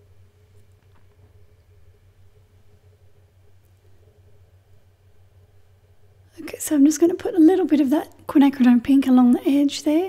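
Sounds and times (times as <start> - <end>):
faint low hum: 0.0 - 10.0
woman speaking: 6.3 - 10.0.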